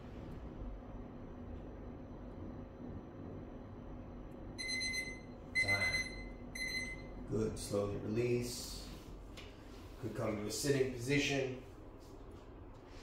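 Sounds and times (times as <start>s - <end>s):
low room hum: 0.0s - 13.0s
timer beeping: 4.6s - 7.1s.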